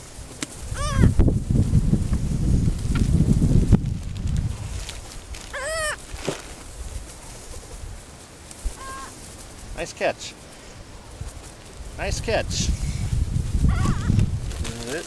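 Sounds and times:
low rumble on microphone: 0:00.0 - 0:08.8, 0:10.8 - 0:15.0
gull calling: 0:00.7 - 0:01.2, 0:05.5 - 0:06.0, 0:08.8 - 0:09.2, 0:13.7 - 0:14.2.

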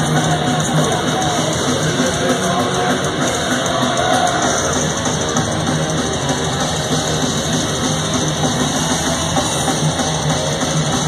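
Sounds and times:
distorted electric guitars: 0:00.0 - 0:11.0
fast drum beat: 0:00.0 - 0:11.0.

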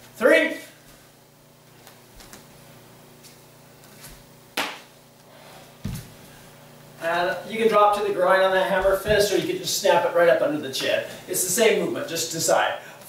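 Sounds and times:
bare foot thumping wooden floor: 0:05.8 - 0:06.2, 0:08.8 - 0:09.4.

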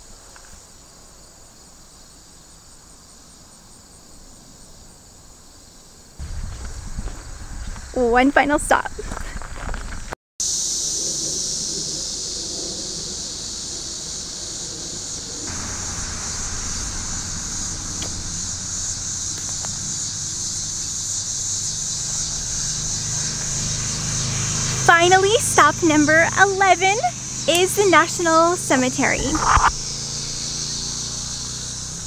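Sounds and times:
insects chirping: 0:00.0 - 0:32.0
low rumble: 0:12.5 - 0:27.5.

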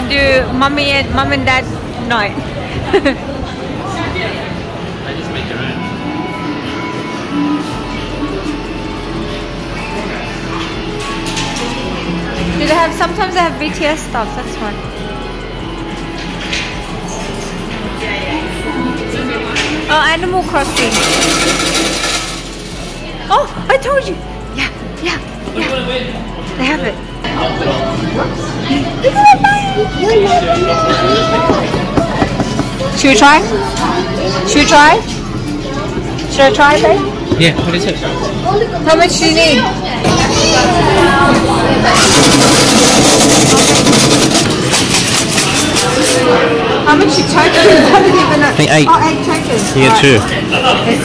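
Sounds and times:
coins rattling into metal tray: 0:20.7 - 0:22.9, 0:42.0 - 0:46.2.

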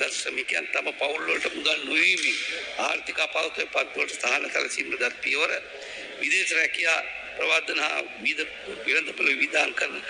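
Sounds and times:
man reading aloud: 0:00.0 - 0:10.0.

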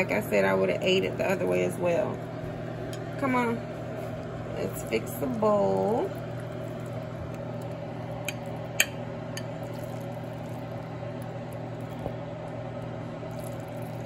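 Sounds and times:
kitchen fan humming: 0:00.0 - 0:14.0
spoon clicking against pot: 0:08.2 - 0:09.5.

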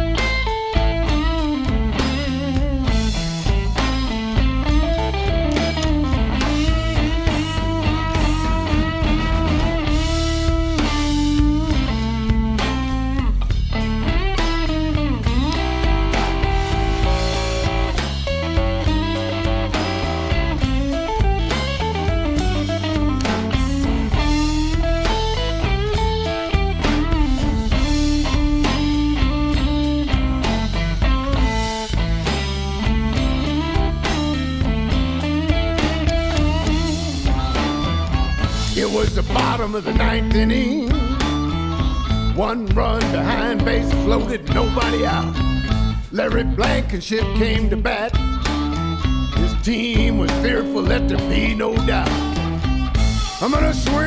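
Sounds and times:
bass: 0:00.0 - 0:54.0
drum kit: 0:00.0 - 0:54.0
electric guitar lead lines: 0:00.0 - 0:54.0.

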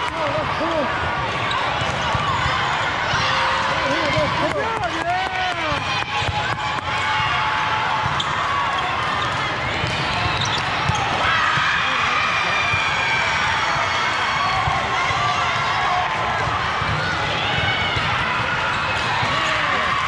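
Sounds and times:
murmur of voices: 0:00.0 - 0:20.0
sneakers squeaking on floor: 0:01.4 - 0:02.5, 0:08.0 - 0:11.2.

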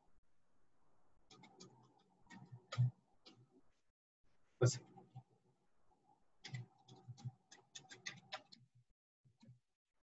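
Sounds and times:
keyboard keystrokes typing: 0:06.4 - 0:08.7.

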